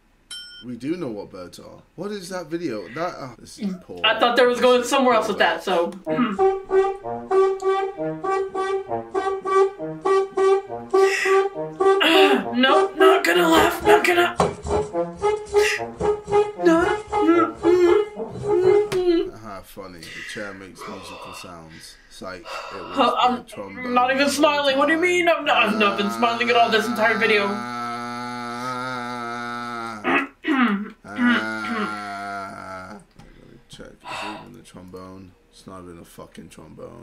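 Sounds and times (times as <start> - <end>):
swooping bending horn notes: 6.1 - 19.3, 23.8 - 30.2.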